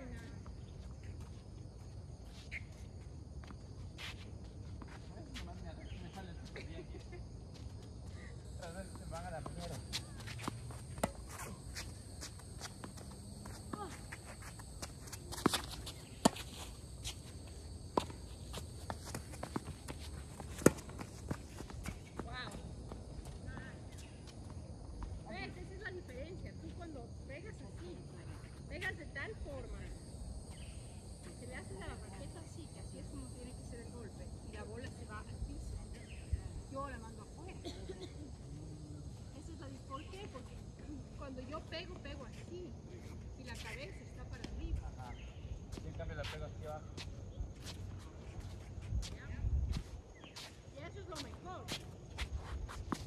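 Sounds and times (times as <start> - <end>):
insect chorus: 0.0 - 53.0
ball bouncing on hard court: 18.8 - 22.6
tennis ball struck by rackets: 20.5 - 21.1.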